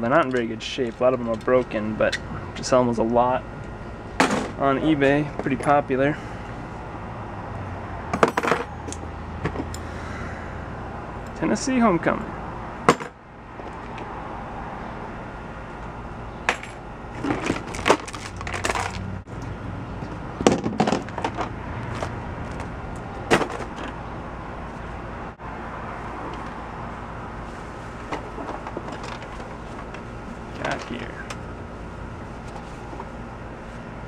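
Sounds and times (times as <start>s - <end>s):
low hum: 0.0s - 34.0s
plastic toys clattering: 17.2s - 19.0s, 28.1s - 29.5s.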